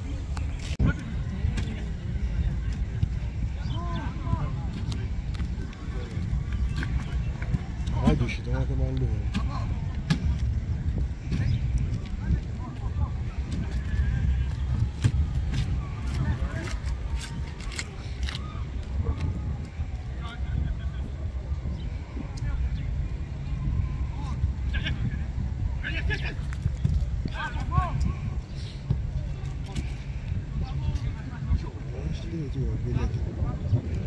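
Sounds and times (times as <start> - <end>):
steady low rumble: 0.0 - 34.0
distant shouts: 3.2 - 8.6, 12.5 - 26.4
footballs being kicked: 13.4 - 17.9.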